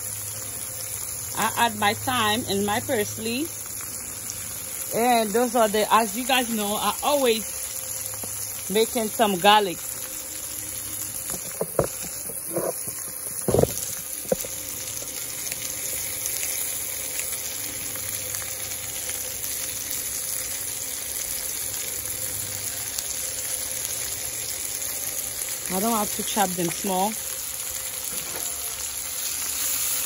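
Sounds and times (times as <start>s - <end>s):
spinach simmering with sizzle: 0.0s - 30.0s.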